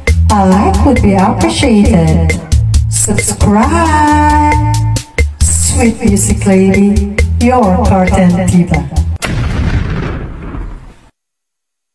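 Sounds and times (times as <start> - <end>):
sharp boom with noisy tail: 9.2 - 11.0.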